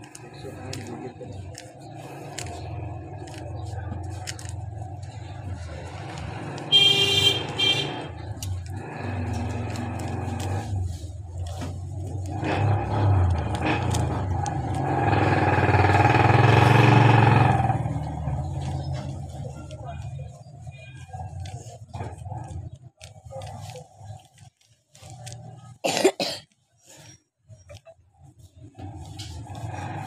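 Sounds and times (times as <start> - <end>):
vehicle passing: 0.1 - 20.5
car horn blast: 6.7 - 8.1.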